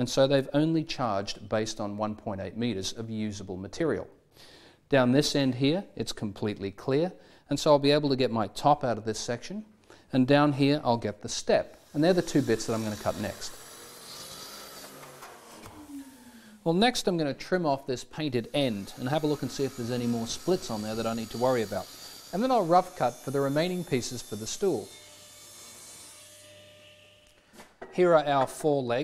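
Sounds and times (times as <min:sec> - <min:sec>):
table saw motor humming: 0:11.8 - 0:16.7, 0:18.4 - 0:27.4.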